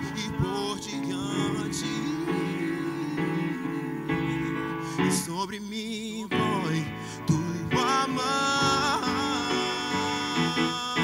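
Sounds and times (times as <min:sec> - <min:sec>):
man singing worship song: 0:00.0 - 0:11.0.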